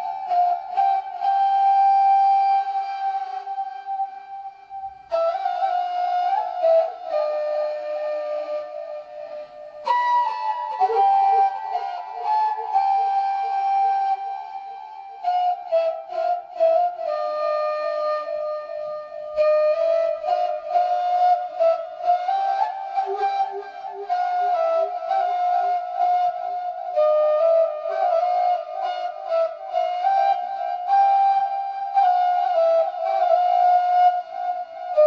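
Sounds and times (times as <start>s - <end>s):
flute melody: 0.0s - 35.0s.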